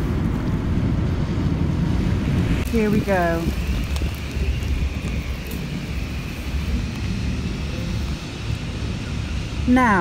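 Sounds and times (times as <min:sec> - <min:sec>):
faint distant drone: 0:00.0 - 0:10.0
wind buffeting microphone: 0:00.0 - 0:10.0.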